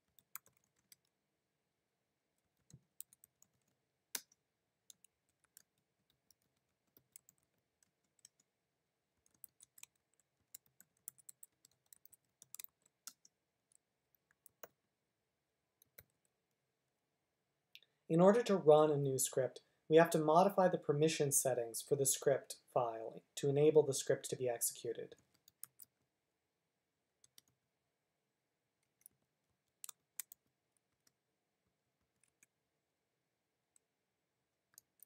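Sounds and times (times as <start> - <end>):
faint keyboard typing: 0.0 - 1.2, 2.3 - 8.5, 9.1 - 14.8, 15.8 - 16.6, 24.9 - 26.1, 27.2 - 27.6, 28.8 - 31.2, 32.0 - 32.6, 34.7 - 35.0.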